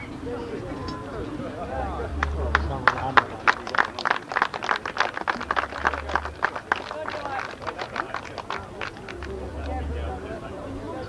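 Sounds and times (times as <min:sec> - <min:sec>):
small group applauding: 0:01.6 - 0:10.3.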